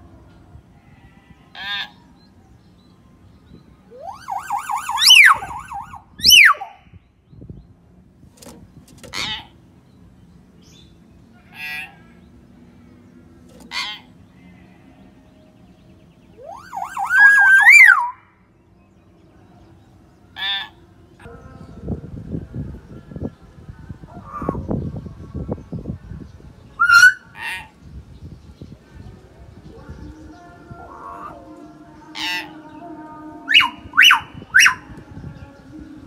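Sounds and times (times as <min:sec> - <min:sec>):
bird warbling whistles: 0:04.0 - 0:06.7, 0:16.4 - 0:18.2, 0:26.8 - 0:27.2, 0:33.5 - 0:34.8.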